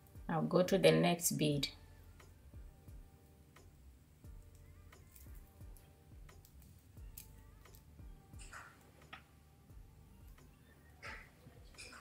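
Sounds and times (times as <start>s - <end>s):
beads clicking together: 4.4s - 9.2s.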